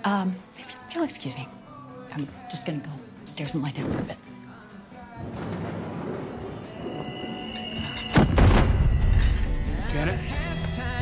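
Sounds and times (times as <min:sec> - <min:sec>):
tense background score: 0:05.2 - 0:10.0.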